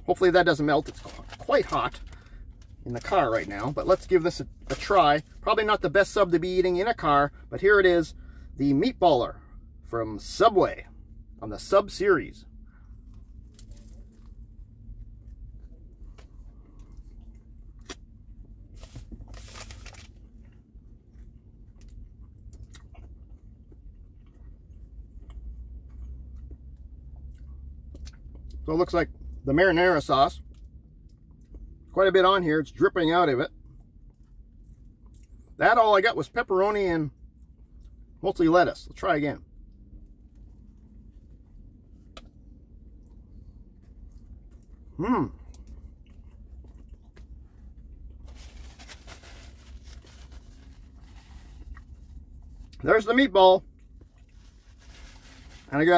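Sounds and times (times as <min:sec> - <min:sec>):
low steady hum: 0:00.0 - 0:55.9
person chewing bread: 0:12.6 - 0:28.6, 0:30.4 - 0:31.8, 0:33.6 - 0:35.6, 0:39.6 - 0:52.8, 0:53.6 - 0:55.6.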